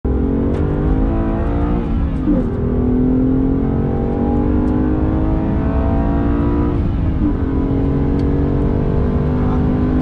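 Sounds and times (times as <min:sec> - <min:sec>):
car engine running hard: 0:00.1 - 0:10.0.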